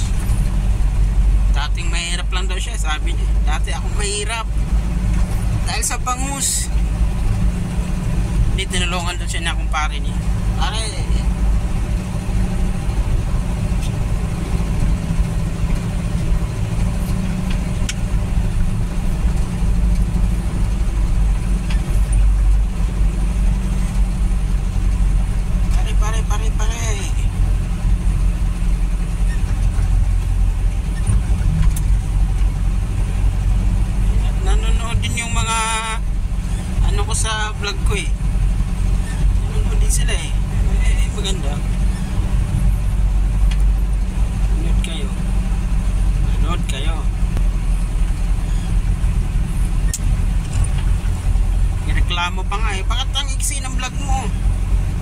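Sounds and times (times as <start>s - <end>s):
vehicle engine and road noise: 0.0s - 55.0s
voices: 1.5s - 4.6s, 5.6s - 6.8s, 25.6s - 27.4s, 34.0s - 38.2s, 39.1s - 42.4s, 51.9s - 54.4s.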